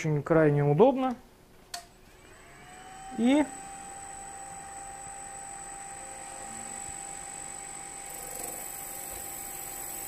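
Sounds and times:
sharpening machine motor whine: 2.0s - 10.0s.

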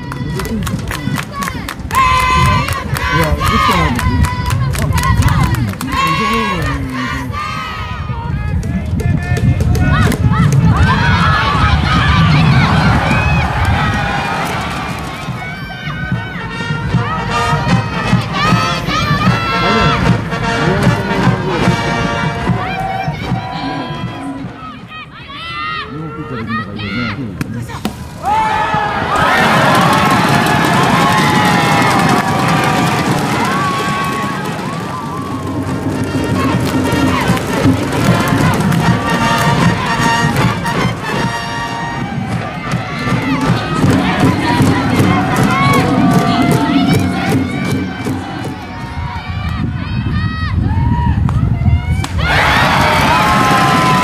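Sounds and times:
steady clapping or drumming: 0.0s - 7.1s, 8.5s - 10.8s, 29.1s - 48.9s.

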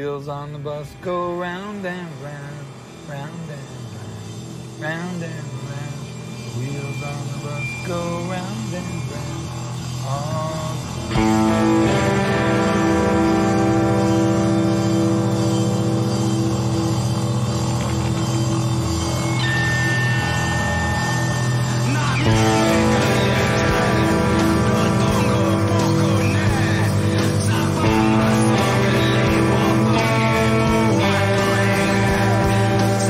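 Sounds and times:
electric guitar picking: 0.0s - 33.0s
voices with wavering pitch: 0.0s - 33.0s.

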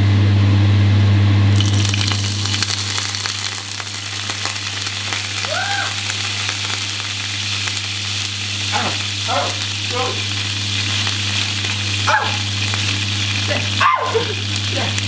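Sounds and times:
frying pan sizzling and crackling: 1.5s - 15.0s.

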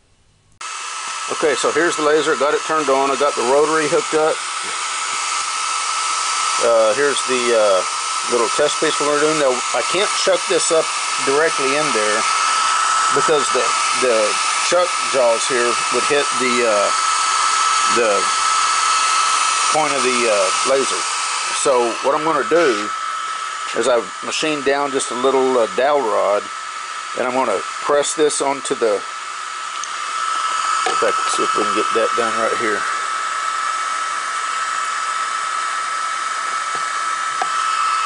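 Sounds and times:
cooling fan hiss: 0.4s - 38.0s
laser engraver high-pitched whine: 0.6s - 38.0s.

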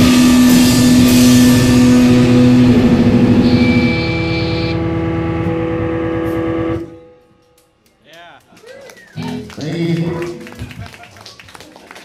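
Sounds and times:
electric guitar chord sustained: 0.0s - 7.4s.

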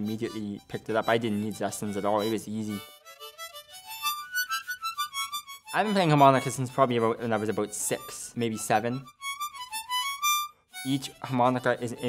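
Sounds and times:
harmonica high notes: 0.0s - 12.0s.

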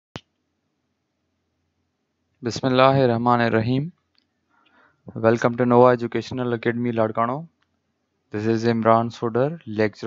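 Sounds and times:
faint recording hiss: 0.2s - 10.0s.

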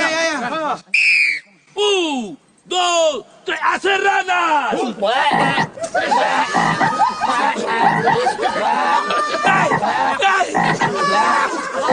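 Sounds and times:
man imitating frog croaks: 5.2s - 5.8s, 6.4s - 7.0s, 7.6s - 8.4s, 9.5s - 11.2s.

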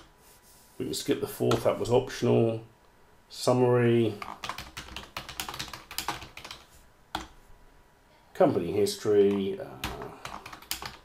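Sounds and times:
typing on a computer keyboard: 4.2s - 7.3s, 9.2s - 11.0s.

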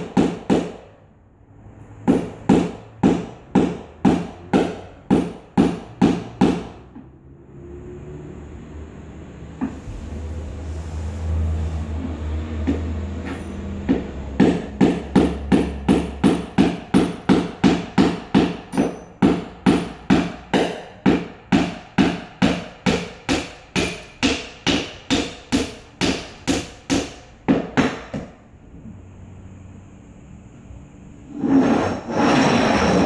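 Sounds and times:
hammer striking concrete floor: 0.0s - 1.0s, 2.0s - 7.1s, 12.5s - 28.4s.

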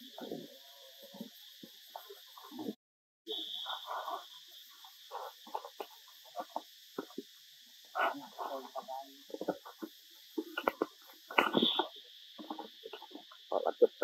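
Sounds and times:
high insect drone: 0.0s - 14.0s.

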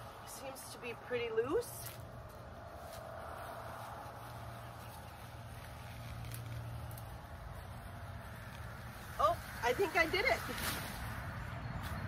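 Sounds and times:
distant engine hum: 0.0s - 12.0s.

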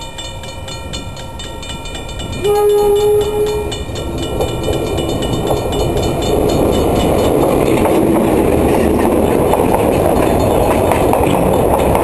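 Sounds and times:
diesel locomotive rumbling past: 0.0s - 12.0s
level-crossing bell ringing: 0.0s - 12.0s
wheels clattering on rails: 0.0s - 12.0s.

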